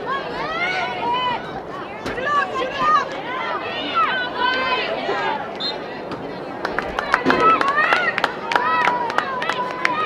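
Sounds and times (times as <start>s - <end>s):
girls calling and shouting: 0.0s - 6.1s.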